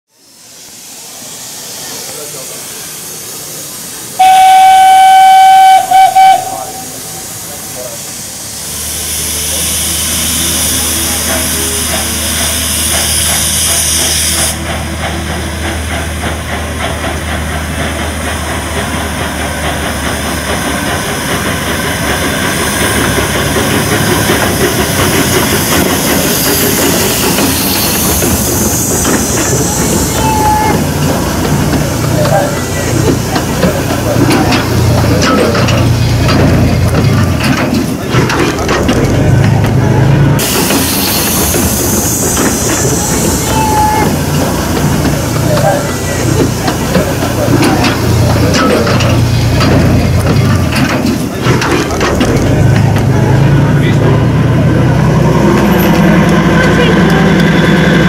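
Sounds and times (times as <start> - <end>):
steam hissing: 0.1 - 38.6, 39.3 - 58.0
steam locomotive whistle: 4.2 - 7.1, 30.0 - 30.9, 43.0 - 44.3
locomotive rhythmic running beats: 10.4 - 58.0.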